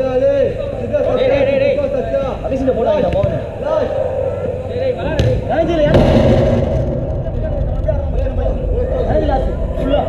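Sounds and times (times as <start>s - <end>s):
low rumble: 3.8s - 10.0s.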